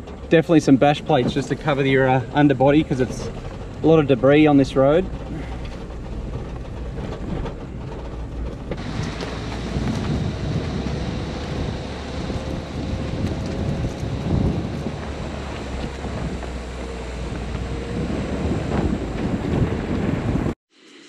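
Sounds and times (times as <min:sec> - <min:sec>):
vehicle rumbling on rough track: 0:00.0 - 0:20.6
wind buffeting microphone: 0:00.8 - 0:20.6.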